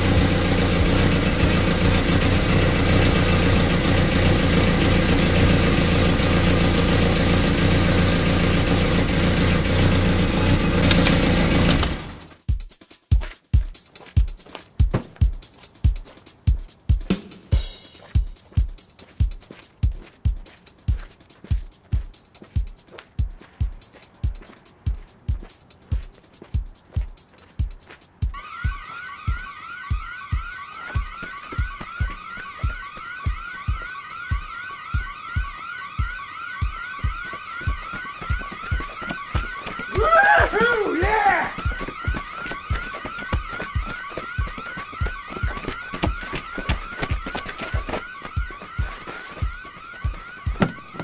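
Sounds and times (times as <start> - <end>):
kick drum beat: 12.4 - 51.0
electronic alarm siren wailing: 28.3 - 51.0.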